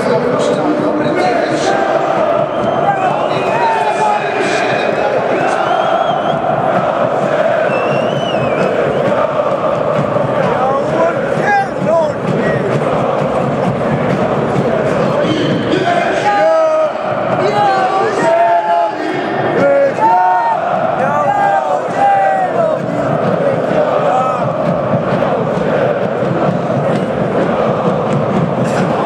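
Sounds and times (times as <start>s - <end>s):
stadium crowd chanting: 0.0s - 29.0s.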